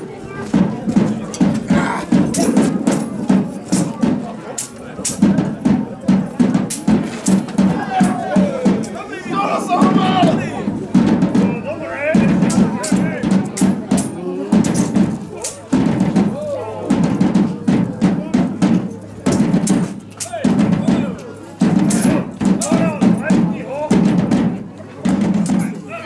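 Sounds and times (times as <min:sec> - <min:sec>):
drum beating fast rhythm: 0:00.1 - 0:26.0
swords clacking together: 0:03.8 - 0:05.2, 0:13.6 - 0:15.7, 0:19.6 - 0:20.3.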